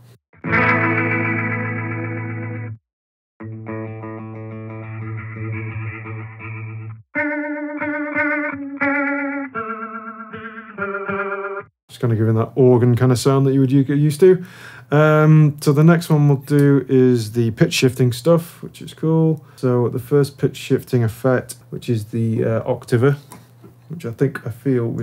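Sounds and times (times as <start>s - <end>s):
electric guitar chords with warble: 0.4s - 2.8s, 3.4s - 11.7s.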